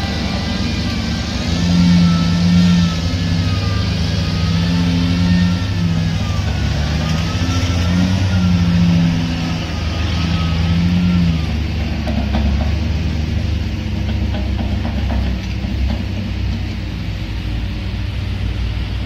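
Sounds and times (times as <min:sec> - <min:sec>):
heavy diesel engines droning: 0:00.0 - 0:19.0.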